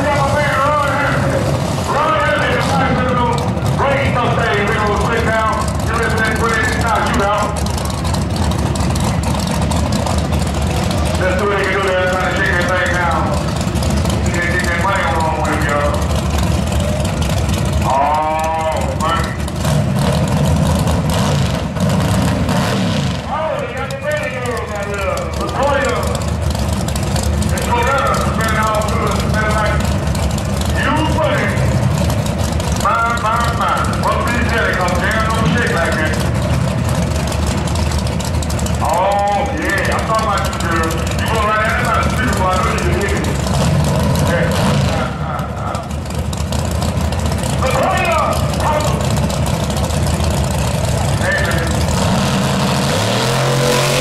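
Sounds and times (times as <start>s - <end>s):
people talking: 0.0s - 7.6s, 11.1s - 13.4s, 14.2s - 16.1s, 17.8s - 19.4s, 23.3s - 26.2s, 27.5s - 29.9s, 30.6s - 31.8s, 32.8s - 36.4s, 38.8s - 43.5s, 44.1s - 46.0s, 47.6s - 49.2s, 51.1s - 51.9s
race car engine idling: 0.0s - 54.0s.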